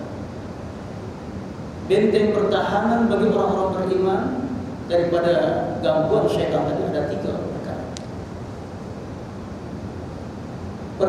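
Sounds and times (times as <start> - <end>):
faint room noise hiss: 0.0 - 11.0.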